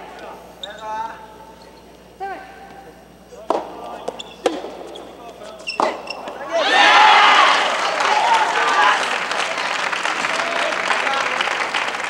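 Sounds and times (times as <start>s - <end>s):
rackets striking rubber ball: 3.4s - 5.0s.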